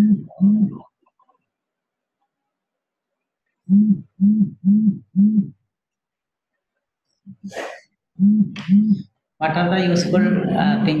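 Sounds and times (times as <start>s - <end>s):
person making wordless syllables: 8.5s - 11.0s.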